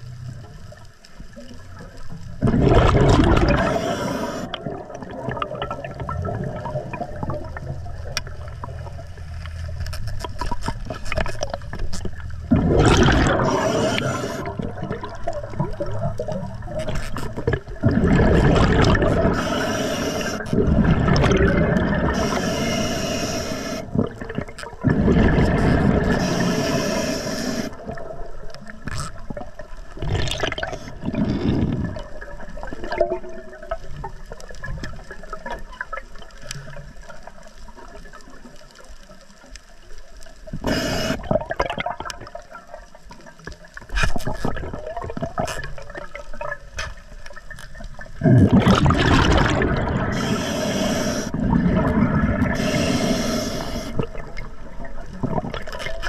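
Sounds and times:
exhaled bubbles rushing: 1.8s - 9.0s, 10.8s - 37.2s, 40.6s - 42.9s, 44.2s - 46.7s, 47.4s - 56.0s
regulator breathing hiss: 3.6s - 4.6s, 13.4s - 14.6s, 19.3s - 20.6s, 22.1s - 23.9s, 26.0s - 27.8s, 40.6s - 41.2s, 50.1s - 51.4s, 52.5s - 54.2s.

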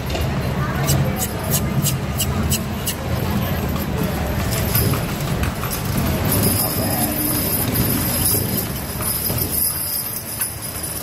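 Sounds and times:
horse hooves clip-clopping on pavement: 0.0s - 11.0s
low rumble of street traffic: 0.0s - 11.0s.

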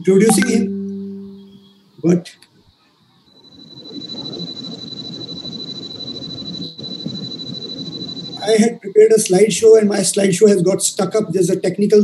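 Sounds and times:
high-pitched electronic whine: 0.3s - 1.8s.

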